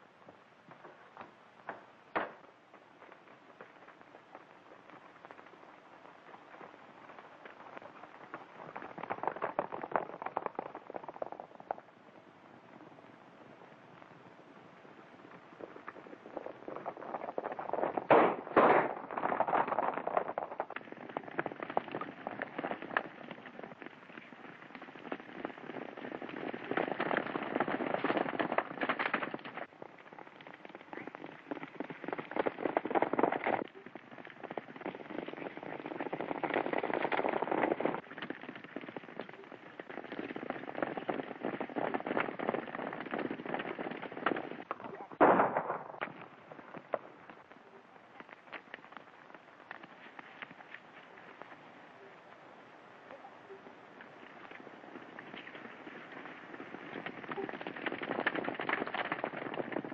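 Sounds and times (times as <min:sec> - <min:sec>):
horses galloping: 0:00.0 - 0:59.9
sharp cracks: 0:00.7 - 0:11.9, 0:15.2 - 0:51.6.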